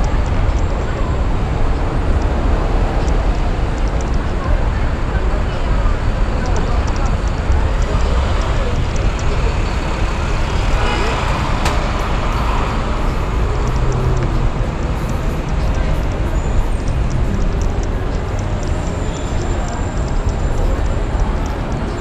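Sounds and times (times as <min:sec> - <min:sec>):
city street traffic rumble: 0:00.0 - 0:22.0
sharp click: 0:11.6 - 0:12.4.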